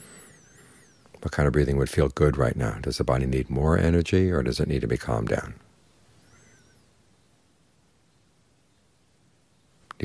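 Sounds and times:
faint high chirp: 0.0s - 1.3s, 5.7s - 10.0s.

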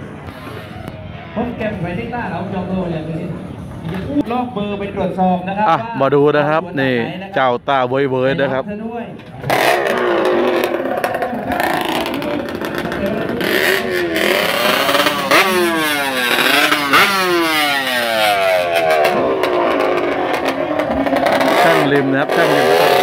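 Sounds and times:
motorcycle engine revving hard: 9.4s - 23.0s.

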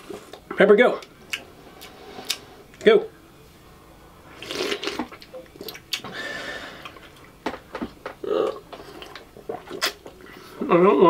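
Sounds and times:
wet slurping and sucking: 1.7s - 2.6s, 4.3s - 7.1s, 8.7s - 10.4s.

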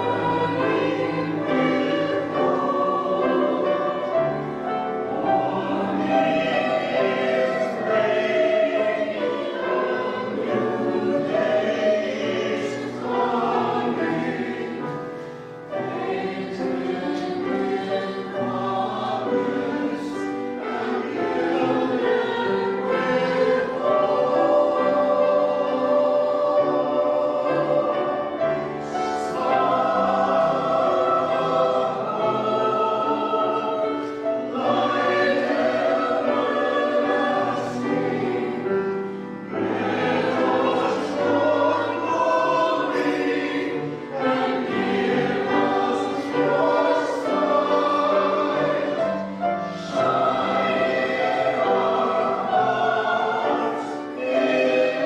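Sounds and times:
choir singing: 0.0s - 55.0s.

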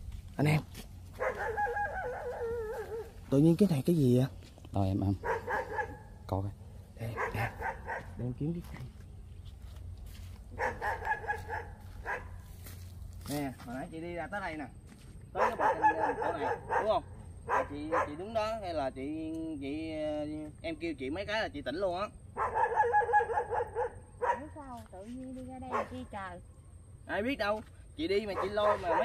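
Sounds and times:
dog barking: 1.1s - 3.2s, 5.1s - 6.2s, 7.0s - 8.3s, 10.5s - 12.5s, 15.3s - 18.6s, 22.4s - 24.6s, 25.7s - 26.1s, 28.2s - 29.0s.

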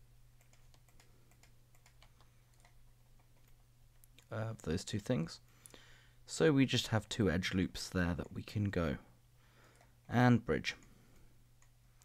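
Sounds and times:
low steady hum: 0.0s - 12.0s
keyboard and mouse clicks: 0.4s - 4.3s.

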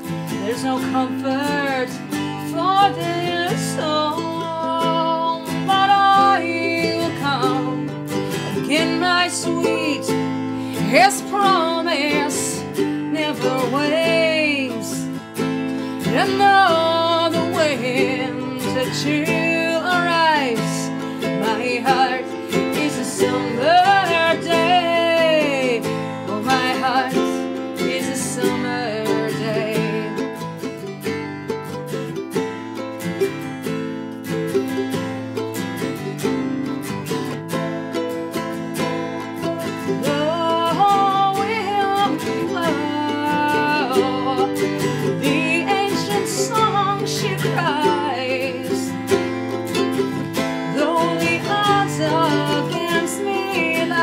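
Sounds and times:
woman's wordless singing: 0.0s - 30.5s, 38.4s - 54.0s
acoustic guitar strumming: 0.0s - 54.0s
ukulele playing: 0.0s - 54.0s.

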